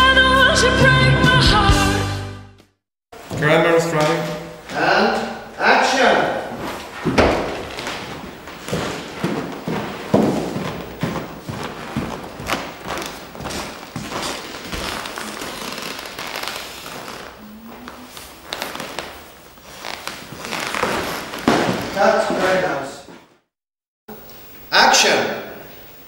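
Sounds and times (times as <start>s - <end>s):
noisy background: 3.2s - 23.1s.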